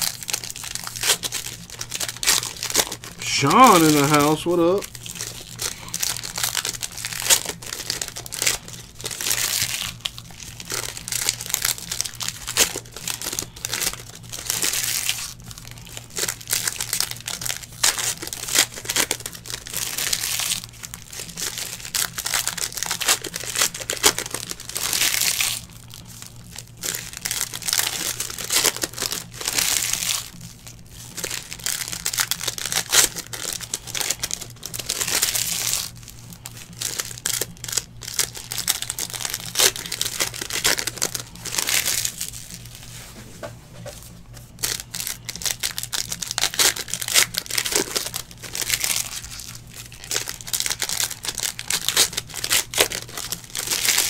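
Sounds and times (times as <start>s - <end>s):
foil wrappers tearing and crinkling: 0.0s - 43.0s, 44.4s - 54.0s.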